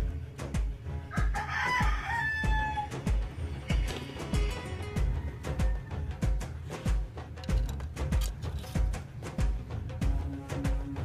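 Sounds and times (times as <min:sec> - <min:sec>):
music with kick-drum beat: 0:00.0 - 0:11.0
rooster crowing: 0:01.1 - 0:03.3, 0:04.7 - 0:06.6.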